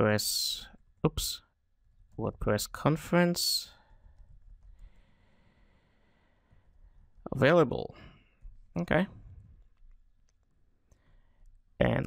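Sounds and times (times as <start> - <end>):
person speaking: 0.0 - 3.8, 7.2 - 8.1, 8.7 - 9.2, 11.8 - 12.0.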